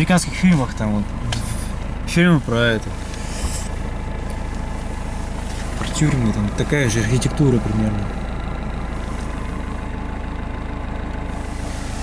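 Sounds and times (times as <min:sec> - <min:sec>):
diesel van engine running: 0:00.0 - 0:12.0.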